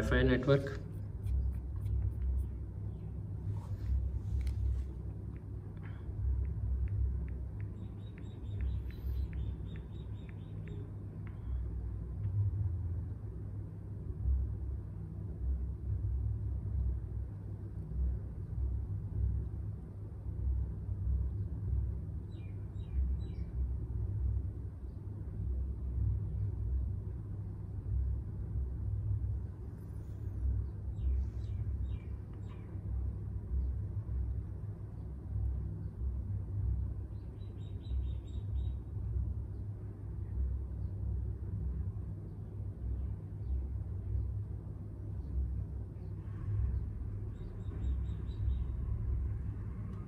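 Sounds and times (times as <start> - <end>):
steady low rumble: 0.0 - 50.0.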